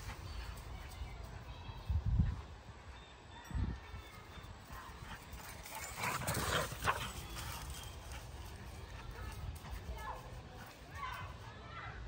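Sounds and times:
dogs growling and yapping: 5.4 - 7.2.

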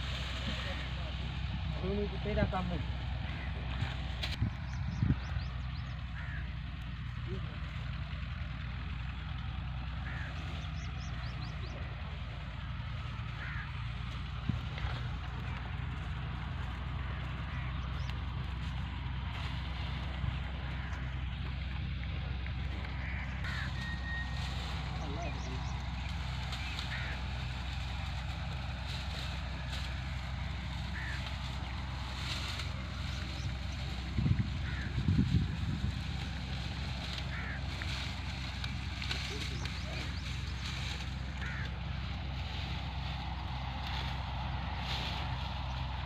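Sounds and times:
tractor diesel engine idling: 0.0 - 46.0
small birds chirping: 3.0 - 13.7, 14.4 - 46.0.

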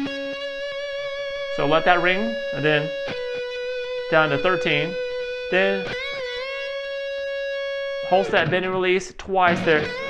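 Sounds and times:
electric guitar bent note: 0.0 - 8.7, 9.5 - 10.0.

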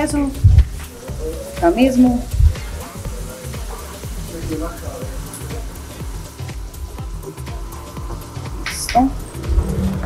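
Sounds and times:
background music with bass beat: 0.0 - 10.0
food sizzling on a grill: 0.0 - 10.0.

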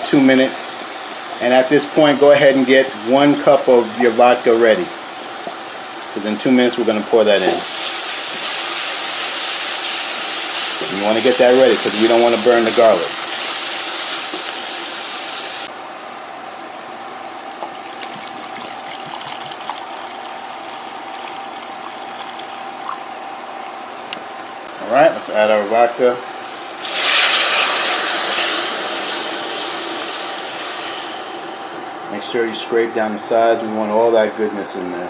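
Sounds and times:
onion and garlic sizzling: 0.0 - 31.8
loud sizzle: 0.0 - 32.3
liquid poured into hot pot: 17.6 - 23.0.

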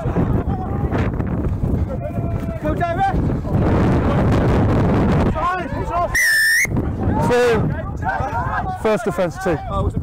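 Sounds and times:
referee's whistle blast: 6.2 - 6.8.

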